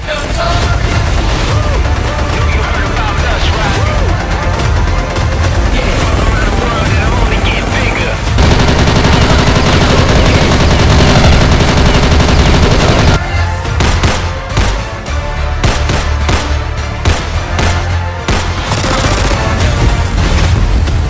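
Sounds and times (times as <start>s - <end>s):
loud background music: 0.0s - 21.0s
machine-gun fire: 4.6s - 13.2s, 13.8s - 14.9s, 15.6s - 19.8s.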